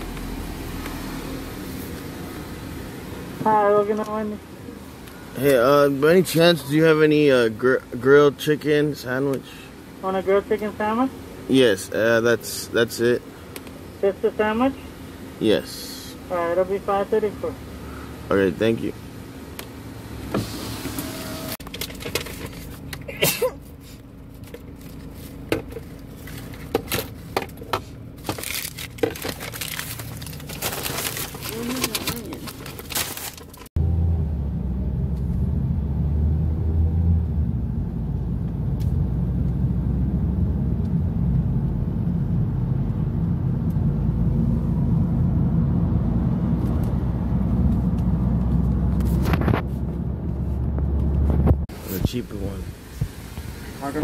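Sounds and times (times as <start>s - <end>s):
car cabin hum: 0.0s - 12.3s, 13.1s - 15.4s, 16.2s - 32.9s
car driving on road: 0.0s - 54.0s.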